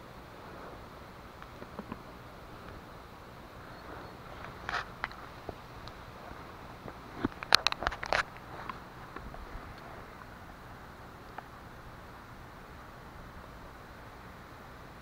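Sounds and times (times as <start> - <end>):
dry leaves and twigs crackling: 1.4 - 10.5.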